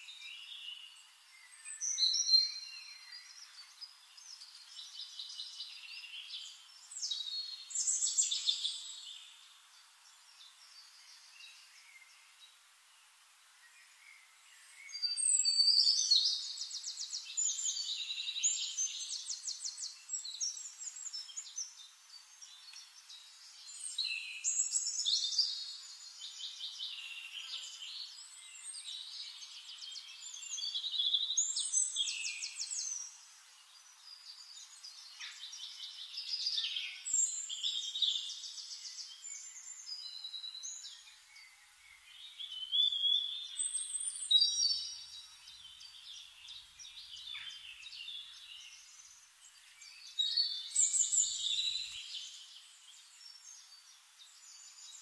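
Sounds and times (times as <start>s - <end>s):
songbirds trilling and chirping: 0.0s - 55.0s.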